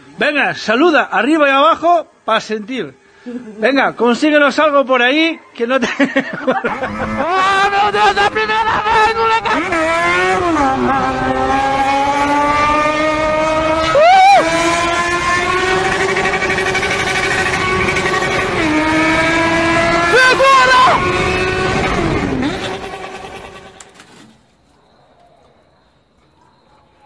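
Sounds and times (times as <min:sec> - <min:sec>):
high-revving engine: 0:06.6 - 0:23.9.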